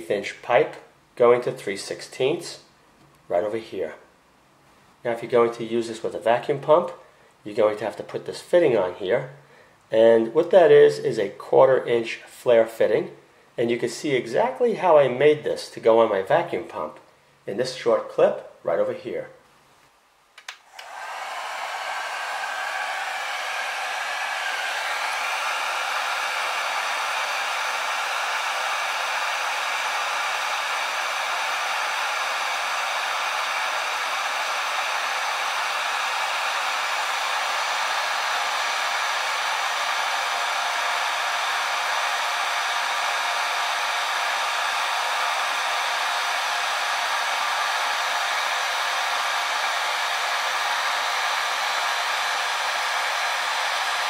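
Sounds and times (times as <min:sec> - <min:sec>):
heat gun fan blowing: 0:20.4 - 0:54.0.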